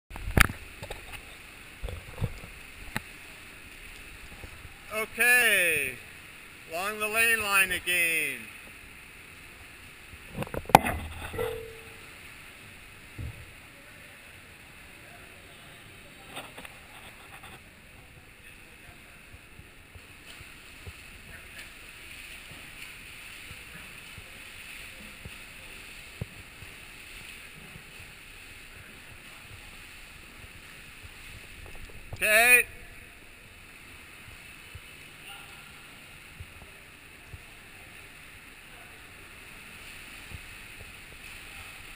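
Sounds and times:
swimmers splashing water: 14.2s - 41.9s.

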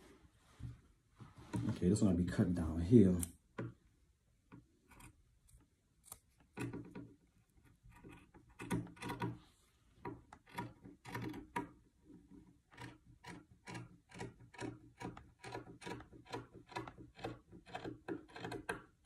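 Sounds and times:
scissors snipping fabric: 12.8s - 18.8s.

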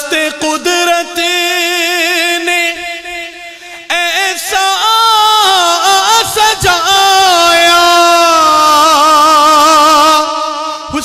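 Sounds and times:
man singing long note: 0.0s - 11.0s.

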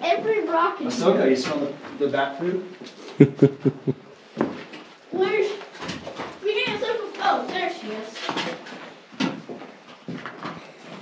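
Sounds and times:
person laughing: 3.1s - 4.0s
person talking: 3.2s - 4.0s.

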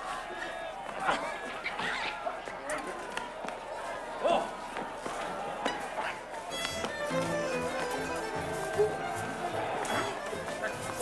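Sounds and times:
crowd shouts and cries: 0.0s - 11.0s
music: 6.5s - 11.0s.

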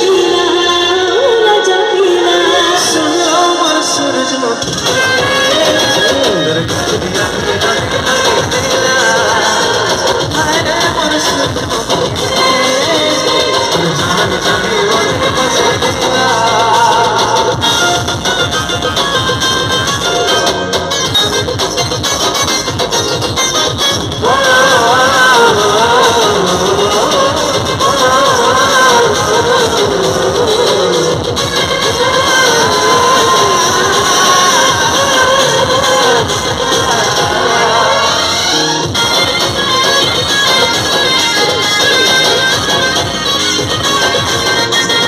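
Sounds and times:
lead vocal singing: 0.0s - 18.5s, 24.1s - 41.6s
live band music through speakers: 0.0s - 45.0s.

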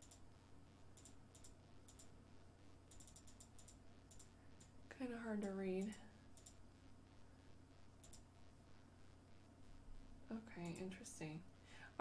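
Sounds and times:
computer mouse clicks: 0.0s - 0.3s, 0.9s - 2.1s, 2.9s - 4.8s, 5.4s - 6.6s, 8.0s - 8.3s.

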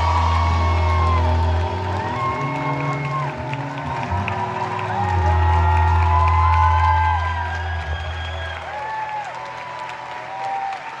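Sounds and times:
audience cheering and applauding: 0.0s - 11.0s
audience shouts and whoops: 0.0s - 11.0s.

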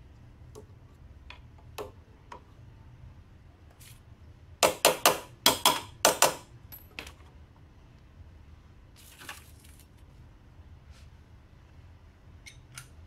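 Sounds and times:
soft rustle: 10.8s - 11.2s.

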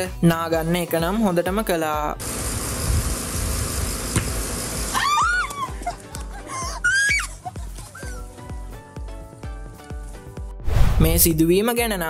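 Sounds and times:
ball hitting concrete: 4.2s - 4.4s
steady rushing noise: 10.6s - 11.3s
low rumble: 10.7s - 11.4s.

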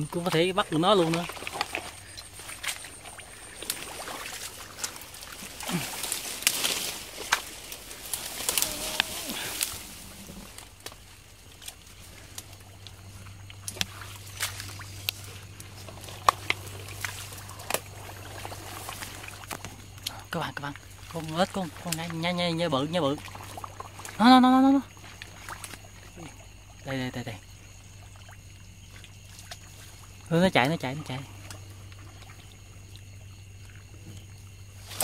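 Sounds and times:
grass stems and twigs crackling: 0.0s - 24.2s
muddy water sloshing: 0.0s - 35.0s.

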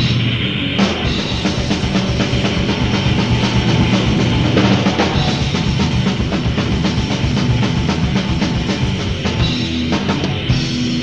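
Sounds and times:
metal band playing: 0.0s - 11.0s
rapid bass drum and snare: 0.0s - 11.0s.

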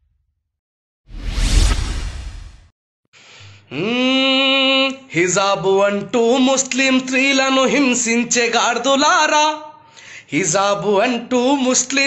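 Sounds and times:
whoosh with deep low boom: 1.1s - 2.7s.

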